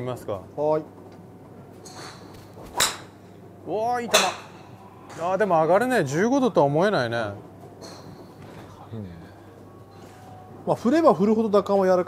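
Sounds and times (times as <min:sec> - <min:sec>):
golf club striking ball: 0:01.8 - 0:03.3, 0:04.1 - 0:04.8.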